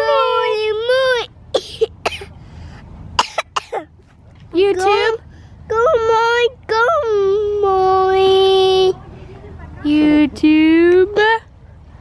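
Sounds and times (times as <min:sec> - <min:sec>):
boy's breathy coughs: 0:01.6 - 0:02.4, 0:03.2 - 0:03.9.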